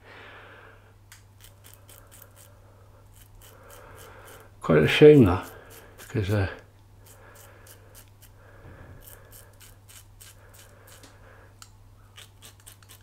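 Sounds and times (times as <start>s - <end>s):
razor scraping stubble: 1.4s - 8.4s, 9.0s - 11.2s, 12.1s - 13.0s.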